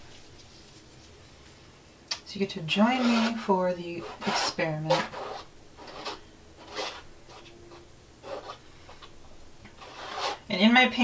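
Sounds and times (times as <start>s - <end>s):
gloved hand rubbing paint on canvas: 2.9s - 8.6s, 9.8s - 10.5s.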